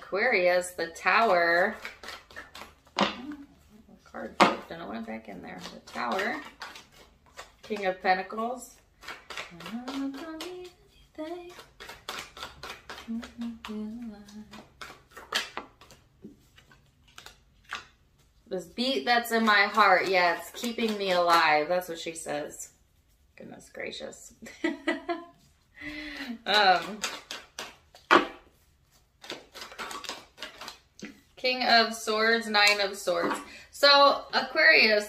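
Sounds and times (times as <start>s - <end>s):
cards being shuffled: 0.0s - 22.4s, 25.3s - 33.5s.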